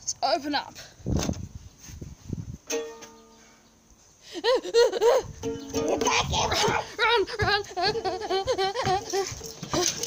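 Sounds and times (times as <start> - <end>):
plucked string note: 2.7 - 3.4, 5.4 - 6.2.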